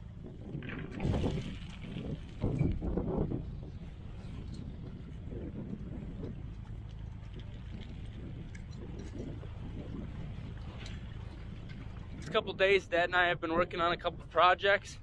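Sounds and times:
low rumble: 0.0s - 14.4s.

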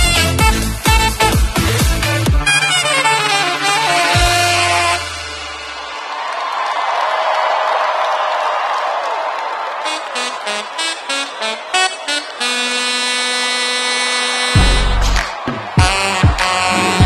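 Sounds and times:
crowd cheering: 0.0s - 17.0s.

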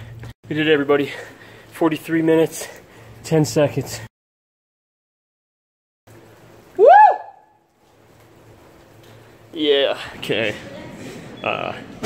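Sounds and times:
man whooping: 6.8s - 7.6s.

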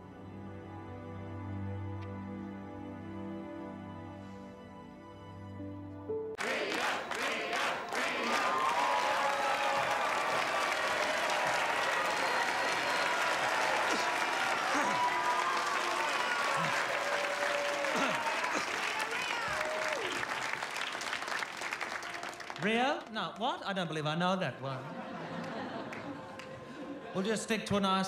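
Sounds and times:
cheering and whooping voices: 6.4s - 20.6s
audience applauding: 6.4s - 23.4s, 25.1s - 27.1s.

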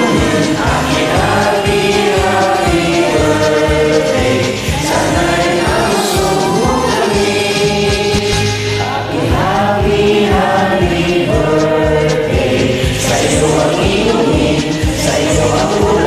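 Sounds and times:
backing track with steady beat: 0.0s - 16.0s
group of voices singing: 0.0s - 16.0s.

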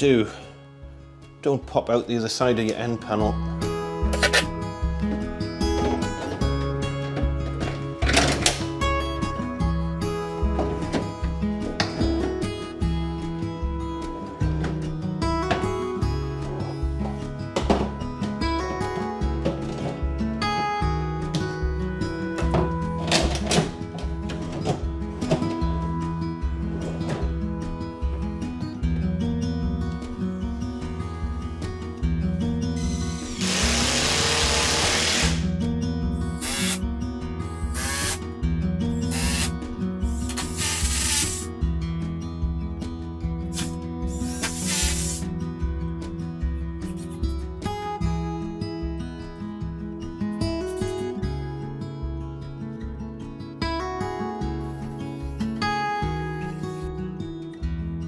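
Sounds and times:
acoustic guitar music: 0.0s - 58.0s
power drill running: 32.9s - 35.5s, 36.3s - 36.8s, 37.6s - 38.2s, 39.0s - 39.6s, 40.3s - 41.5s, 43.6s - 45.2s.

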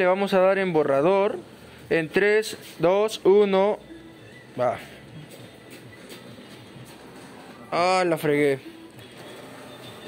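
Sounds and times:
printer mechanical whir: 5.1s - 10.0s.

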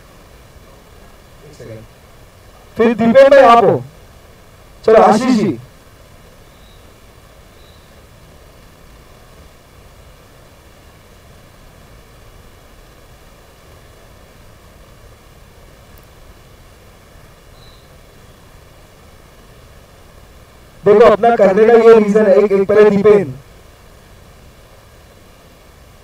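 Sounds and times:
faint steady hiss: 0.0s - 26.0s.

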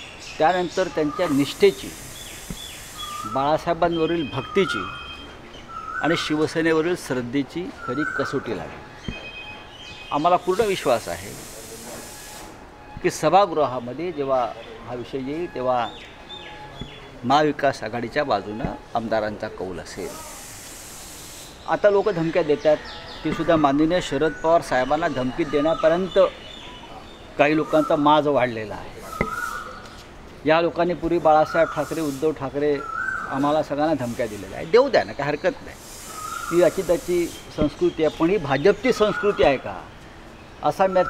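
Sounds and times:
background hiss: 0.0s - 41.0s
man speaking: 0.4s - 2.0s, 21.7s - 26.4s, 27.4s - 29.2s, 36.5s - 39.9s
man speaking into microphones: 17.2s - 20.4s, 21.7s - 26.4s, 27.4s - 29.2s, 30.4s - 35.8s, 36.5s - 39.9s, 40.6s - 41.0s.

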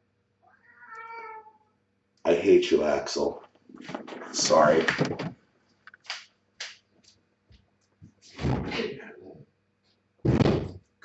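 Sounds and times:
cat meowing: 0.4s - 1.7s.

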